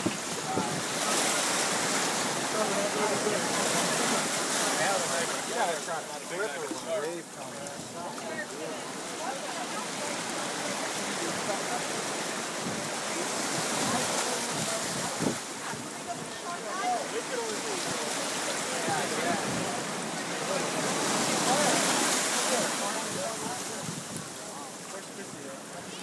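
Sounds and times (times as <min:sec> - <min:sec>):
surf washing around legs: 0:00.0 - 0:26.0.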